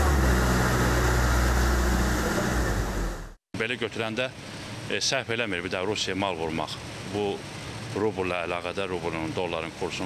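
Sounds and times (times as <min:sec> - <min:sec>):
refrigeration machinery humming: 0:00.0 - 0:03.4.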